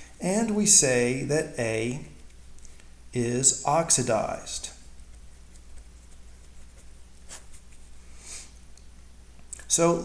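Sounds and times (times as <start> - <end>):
low steady hum: 0.0 - 10.0
pen scratching on paper: 4.9 - 7.9.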